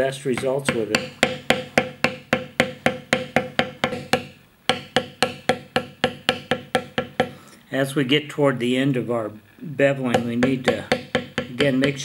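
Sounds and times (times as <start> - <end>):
mallet tapping metal stamp: 0.4 - 7.4, 10.1 - 12.0.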